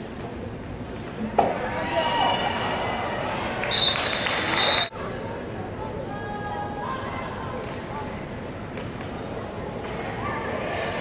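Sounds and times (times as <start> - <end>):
spectators shouting and cheering: 1.3 - 4.9.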